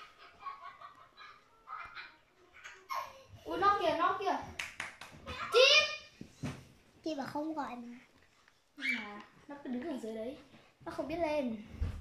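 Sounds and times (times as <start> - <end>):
sharp claps: 4.5 - 5.3.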